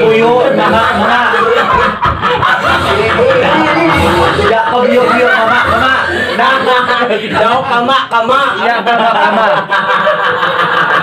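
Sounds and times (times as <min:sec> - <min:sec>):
people snickering and chuckling: 0:00.0 - 0:11.0.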